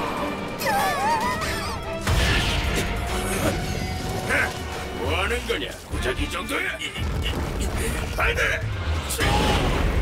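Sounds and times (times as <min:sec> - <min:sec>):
background music: 0:00.0 - 0:10.0
character wordless cries: 0:00.6 - 0:01.9.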